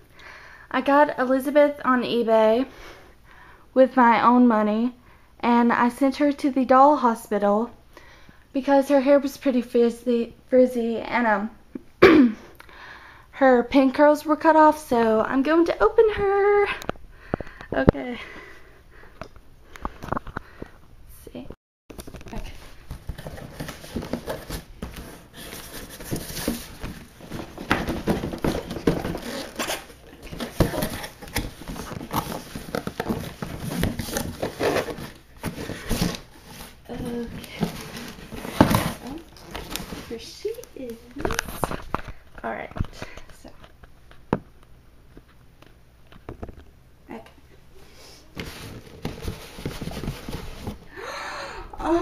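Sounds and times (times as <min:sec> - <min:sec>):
paper rustling: 0:21.9 - 0:42.0
cardboard knocks and scrapes: 0:22.8 - 0:40.3, 0:48.4 - 0:50.9.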